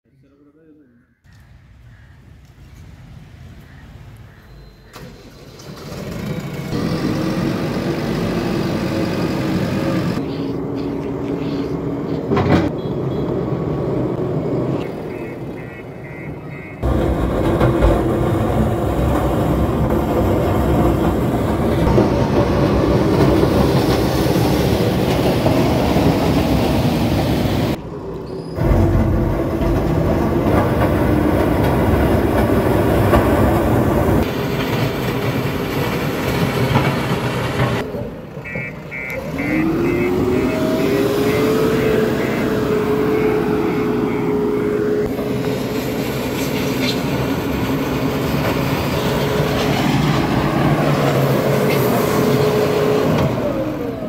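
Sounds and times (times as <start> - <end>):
diesel engine running under load: 4.9 - 54.0
engine revving: 5.0 - 12.8, 13.5 - 54.0.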